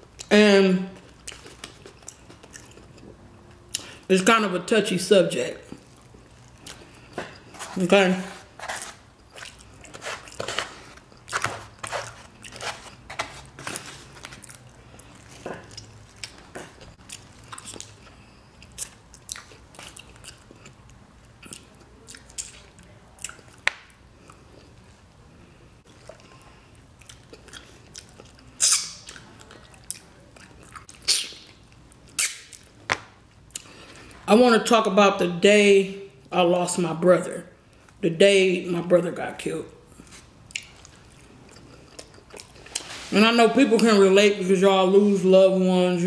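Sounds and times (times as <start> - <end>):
person chewing food: 0.9 - 4.0, 5.6 - 25.0, 25.8 - 34.3, 39.9 - 43.1
loud mouth smacks: 28.6 - 29.2, 31.0 - 31.6, 32.2 - 32.6.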